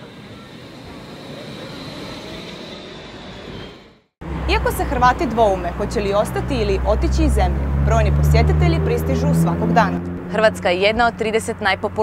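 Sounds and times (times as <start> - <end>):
electric tram rolling past: 0.0 - 12.0.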